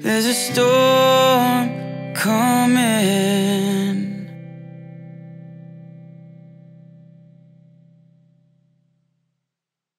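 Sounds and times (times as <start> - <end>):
guitar chord held: 0.0 - 8.8.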